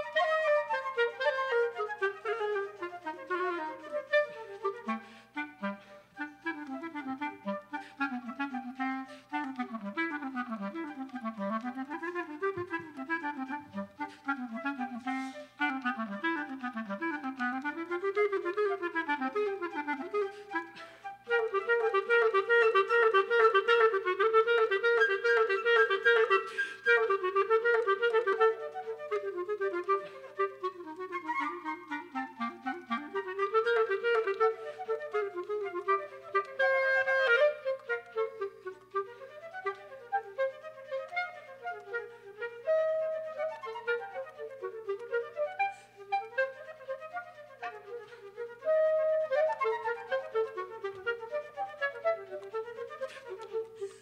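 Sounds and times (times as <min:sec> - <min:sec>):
clarinet: 0:00.0 - 0:54.0
flute: 0:00.0 - 0:54.0.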